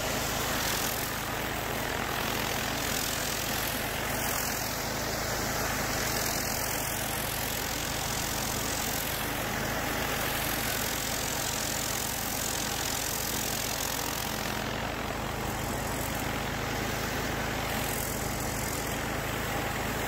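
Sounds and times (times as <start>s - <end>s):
high-pressure water hissing on concrete: 0.0s - 20.0s
pressure washer engine running: 0.0s - 20.0s.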